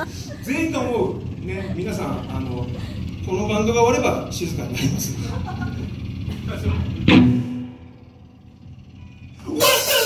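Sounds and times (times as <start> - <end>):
faint amplifier hum: 0.0 - 10.0.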